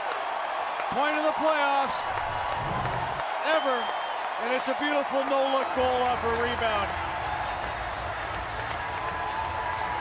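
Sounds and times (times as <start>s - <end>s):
crowd applauding and cheering: 0.0s - 10.0s.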